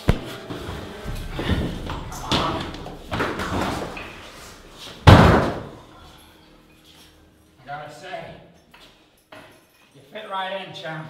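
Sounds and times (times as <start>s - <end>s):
heavy slam with short echo: 0.0s - 6.0s.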